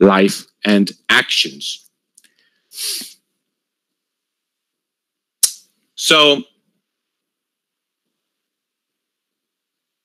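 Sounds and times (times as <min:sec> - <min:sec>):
mouth click: 0:05.4 - 0:05.7.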